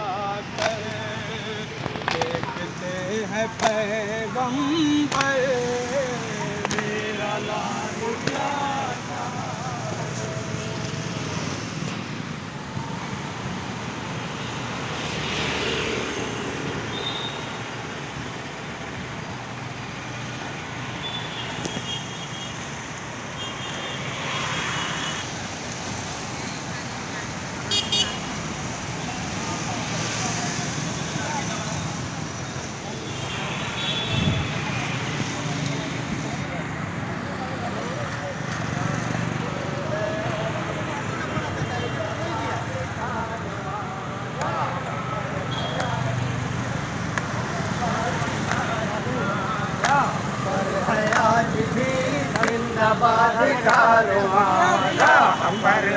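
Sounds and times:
people talking: 0.0 - 10.8, 34.3 - 46.4, 47.4 - 55.9
street traffic going by: 0.0 - 55.9.

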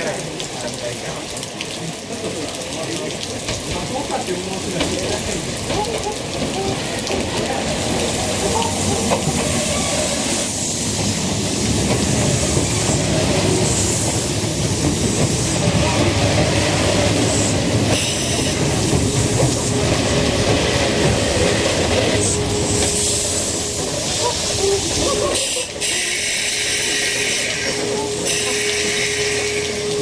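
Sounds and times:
train wheels rumbling on rails: 0.0 - 30.0.

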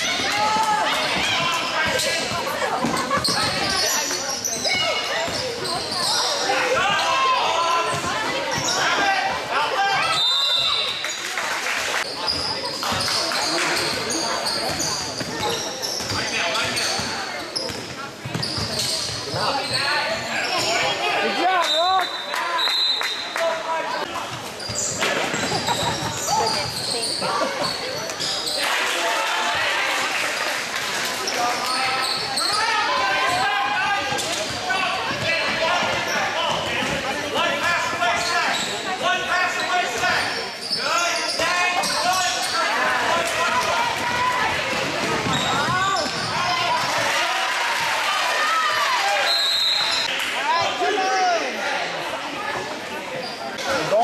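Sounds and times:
shouts and chatter: 0.0 - 17.4, 18.4 - 54.0.

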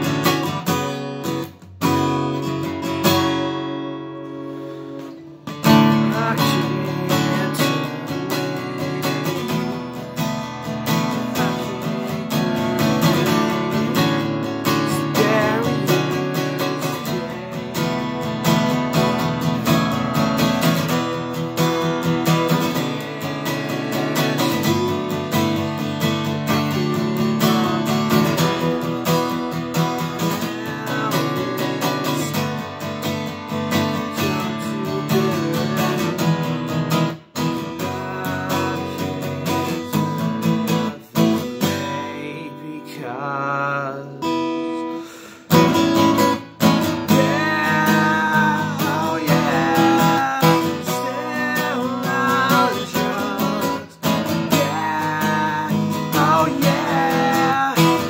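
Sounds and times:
acoustic guitar chords: 0.0 - 58.0.

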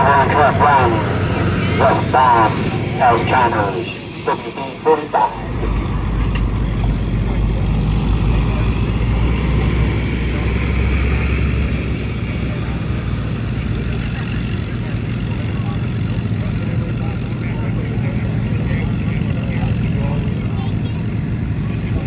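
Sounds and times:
truck engine running: 0.0 - 22.0.

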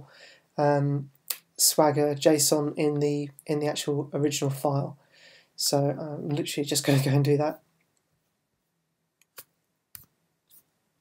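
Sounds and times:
computer mouse clicks: 9.2 - 10.7.

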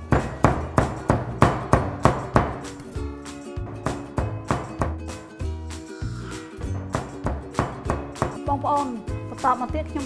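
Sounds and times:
cleaver chopping on wooden board: 0.0 - 2.7, 3.7 - 5.0, 6.8 - 8.5.

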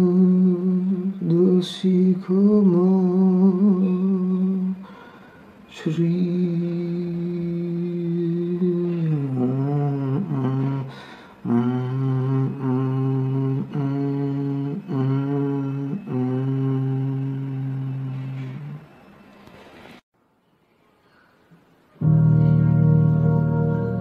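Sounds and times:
man humming: 5.8 - 18.9.

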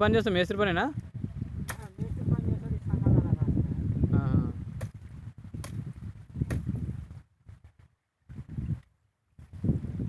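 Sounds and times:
blade cracking a branch: 1.6 - 2.1, 5.6 - 6.7.

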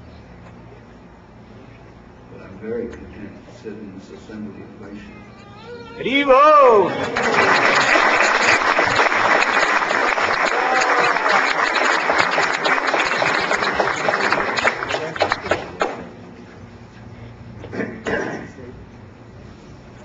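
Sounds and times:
loud voice calling out: 5.1 - 7.1
audience applauding: 6.7 - 15.9.

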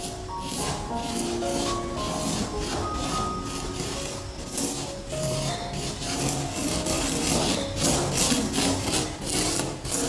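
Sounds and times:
spoon scraping sand on paper: 0.0 - 10.0.

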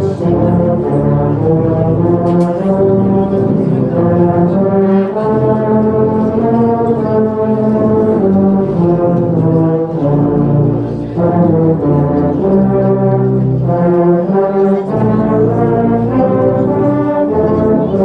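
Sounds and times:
tuba ensemble playing a carol: 0.0 - 18.0.

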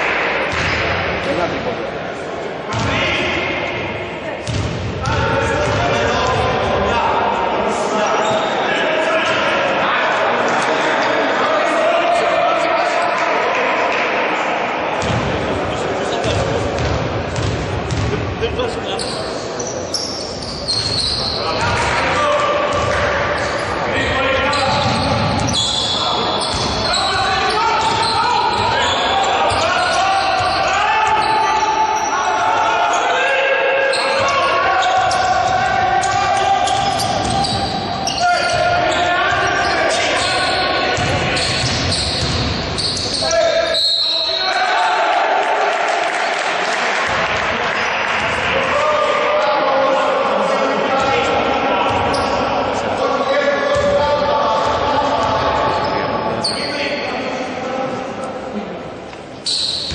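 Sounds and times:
voices echoing in a gym: 0.0 - 59.9.

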